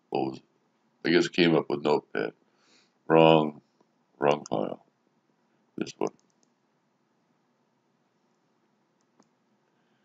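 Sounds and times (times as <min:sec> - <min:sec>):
computer mouse clicking: 0:06.0 - 0:06.6, 0:09.0 - 0:09.4.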